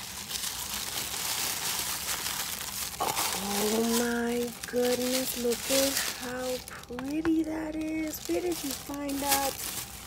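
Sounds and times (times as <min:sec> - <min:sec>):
tissue paper rustling: 0:00.0 - 0:10.0.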